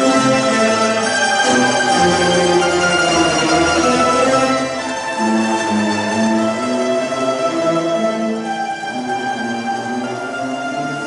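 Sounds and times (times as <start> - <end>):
mandolin orchestra playing: 0.0 - 11.0.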